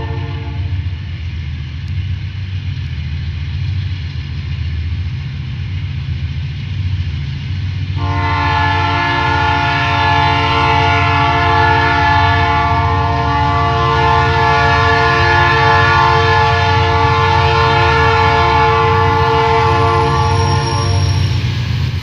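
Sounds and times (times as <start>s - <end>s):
locomotive air horn chord: 0.0s - 0.9s, 8.0s - 21.3s
diesel engine rumble: 0.0s - 22.0s.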